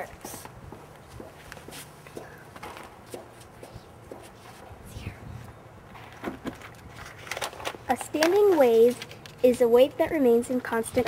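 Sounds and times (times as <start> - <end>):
girl speaking: 0.0 - 0.5, 7.9 - 11.0
faint low hum: 0.0 - 11.0
footsteps on paving: 0.1 - 4.7.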